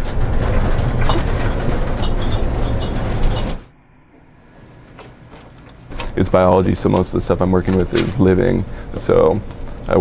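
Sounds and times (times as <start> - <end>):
loud steady rumbling: 0.0 - 4.0.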